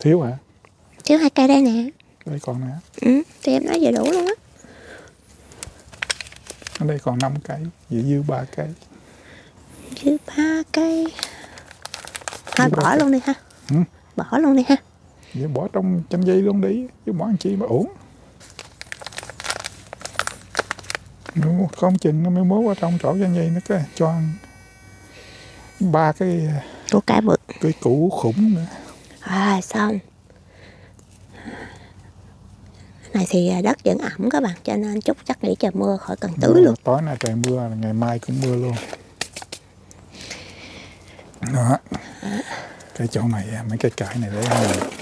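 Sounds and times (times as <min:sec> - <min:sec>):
soil rustling: 0:02.4 - 0:08.9, 0:10.7 - 0:13.8, 0:17.4 - 0:24.4, 0:35.8 - 0:45.0
plastic tray crinkling: 0:05.5 - 0:07.2, 0:11.0 - 0:13.2, 0:18.4 - 0:21.9, 0:43.8 - 0:45.0
soft rustle of soil: 0:16.2 - 0:23.0, 0:36.1 - 0:41.8.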